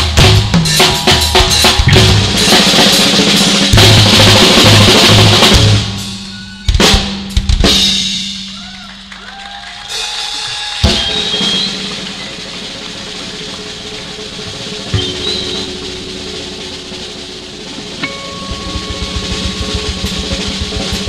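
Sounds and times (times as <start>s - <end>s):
fast bass drum strokes: 0.0s - 8.6s, 10.8s - 21.0s
acoustic drum kit solo: 0.0s - 9.2s, 9.8s - 21.0s
cymbals ringing: 10.8s - 21.0s.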